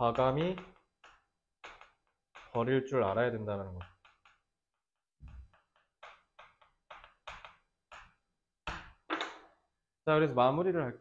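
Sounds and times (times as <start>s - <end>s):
chalk tapping and scraping on chalkboard: 0.0s - 4.5s, 5.2s - 8.9s.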